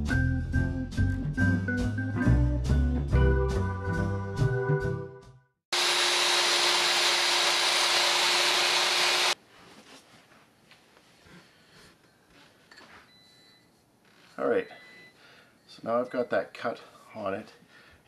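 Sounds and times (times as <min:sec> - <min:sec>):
miter saw cutting wood: 0:05.7 - 0:09.4.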